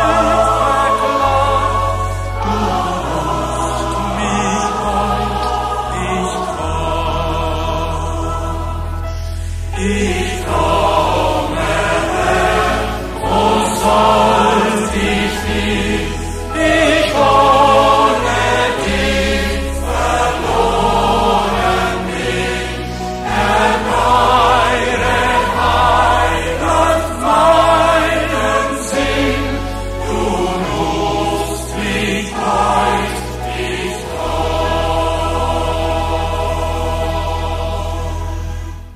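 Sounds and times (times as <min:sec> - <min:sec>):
large choir singing a hymn: 0:00.0 - 0:38.9.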